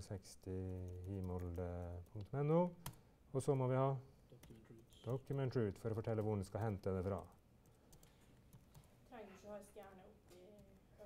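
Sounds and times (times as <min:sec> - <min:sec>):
keyboard typing: 0:00.6 - 0:03.0, 0:04.3 - 0:08.9.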